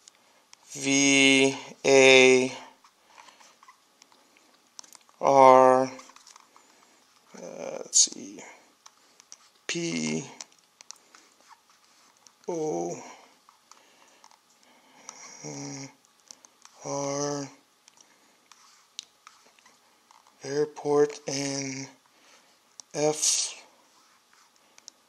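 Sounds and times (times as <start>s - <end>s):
man's drawn-out voice: 0.7s - 2.7s, 5.2s - 6.0s, 7.4s - 8.5s, 9.7s - 10.4s, 12.5s - 13.2s, 16.8s - 17.6s, 20.4s - 21.9s, 23.0s - 23.7s.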